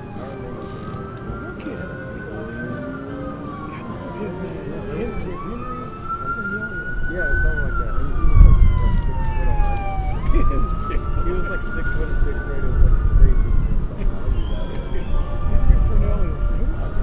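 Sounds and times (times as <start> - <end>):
siren wailing: 0.0 - 17.0
voices chattering: 0.0 - 17.0
wind rumble on microphone: 4.9 - 17.0.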